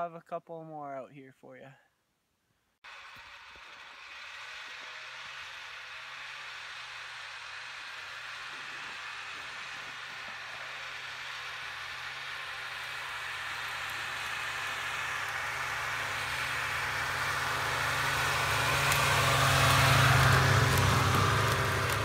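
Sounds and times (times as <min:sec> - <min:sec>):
snowmobile engine passing by: 0:02.9 - 0:22.0.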